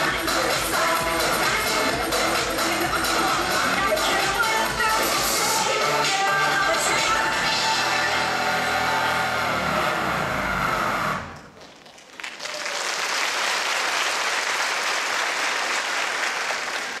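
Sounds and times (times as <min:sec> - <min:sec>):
dance music: 0:00.0 - 0:11.4
audience applause: 0:11.4 - 0:17.0.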